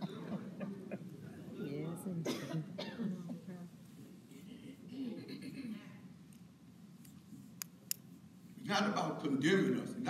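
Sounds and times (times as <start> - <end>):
low voices in a room: 0.0 - 6.6
person coughing: 2.3 - 3.2.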